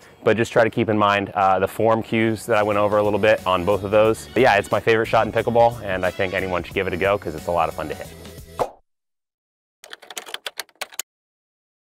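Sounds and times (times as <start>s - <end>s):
typing clicks: 9.8s - 11.1s.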